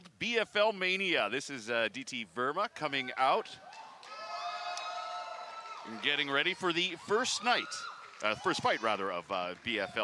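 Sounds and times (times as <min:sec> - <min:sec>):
person shouting a cheer: 0:02.7 - 0:09.0.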